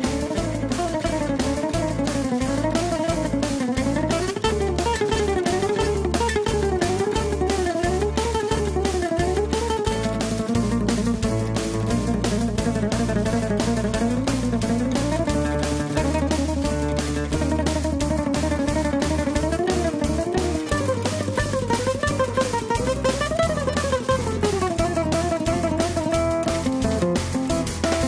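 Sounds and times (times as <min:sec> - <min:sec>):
acoustic guitar fast runs: 0:00.0 - 0:28.0
backing track with beat and bass: 0:00.0 - 0:28.0.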